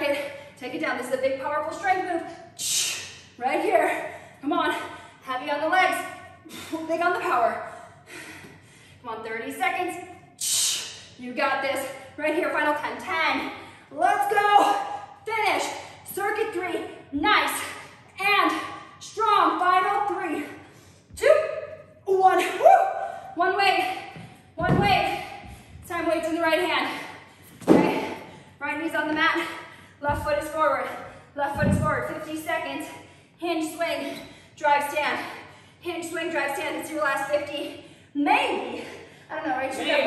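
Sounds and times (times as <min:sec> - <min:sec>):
woman speaking: 0:03.4 - 0:06.1, 0:21.2 - 0:22.6, 0:23.4 - 0:27.1, 0:27.7 - 0:40.0.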